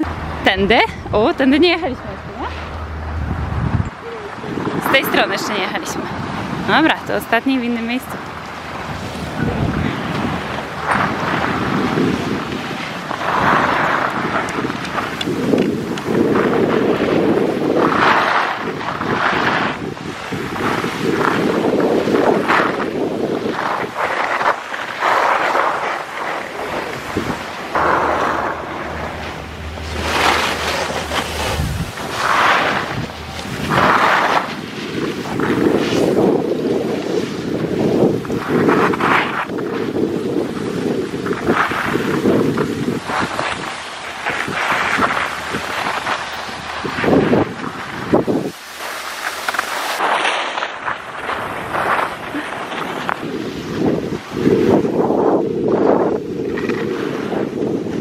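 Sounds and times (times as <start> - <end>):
wind buffeting microphone: 0.0 - 58.0
skis scraping over snow: 4.5 - 58.0.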